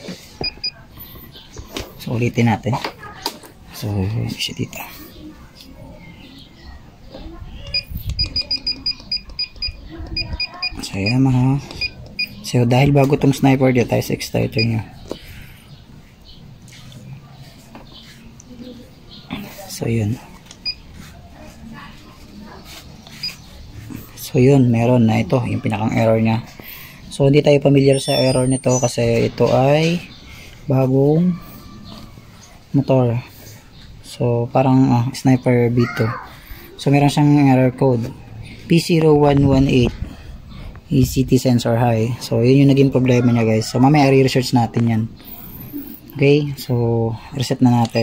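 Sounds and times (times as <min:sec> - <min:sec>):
faint background noise: 0:00.0 - 0:48.0
electronic scanner beeps: 0:00.4 - 0:00.8, 0:07.7 - 0:12.5, 0:20.6 - 0:20.9, 0:23.1 - 0:23.5, 0:27.7 - 0:29.4
short electronic beep: 0:27.8 - 0:29.0.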